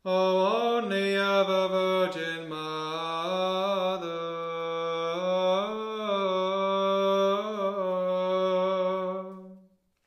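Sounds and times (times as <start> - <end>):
person chanting: 0.0 - 9.6.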